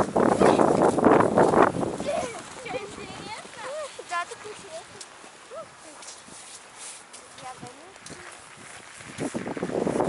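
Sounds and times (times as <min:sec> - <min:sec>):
footsteps on packed snow: 0:00.0 - 0:10.0.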